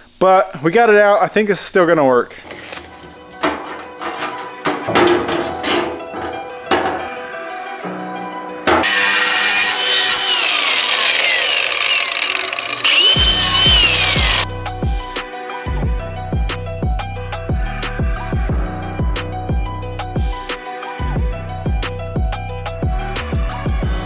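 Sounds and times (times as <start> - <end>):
angle grinder cutting metal: 8.8 - 14.5.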